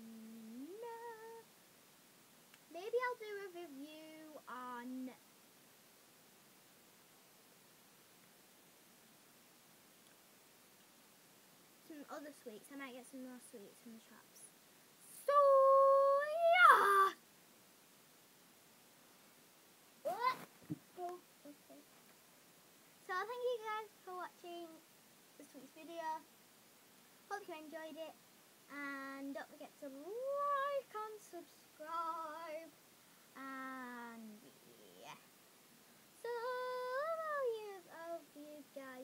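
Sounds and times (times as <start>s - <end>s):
girl singing high held note: 0.0s - 1.5s, 15.1s - 17.2s, 28.7s - 32.7s, 36.2s - 39.0s.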